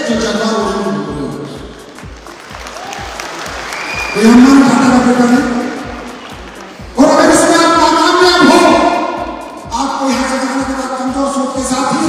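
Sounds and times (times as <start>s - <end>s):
music with steady beat: 0.0s - 12.0s
audience applause: 2.0s - 4.6s.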